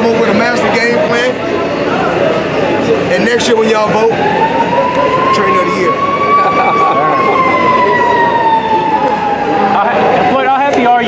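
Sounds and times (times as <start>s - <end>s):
siren wailing: 3.1s - 11.0s.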